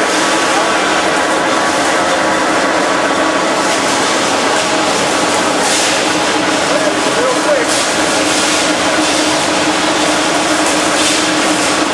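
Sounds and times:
industrial machinery whirring: 0.0s - 11.9s.

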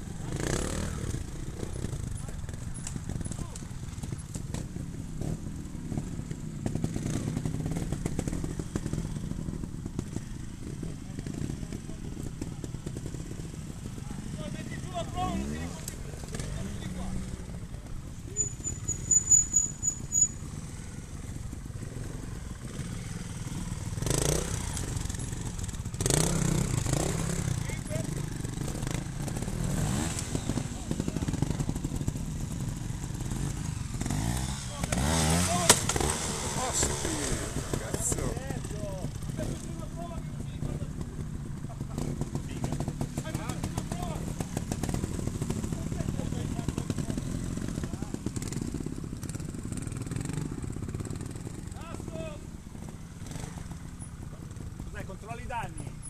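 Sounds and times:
motorcycle engine blipping: 17.2s - 39.8s.

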